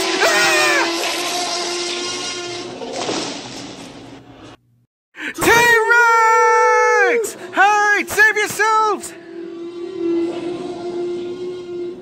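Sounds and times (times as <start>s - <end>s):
person screaming in fright: 0.1s - 1.0s.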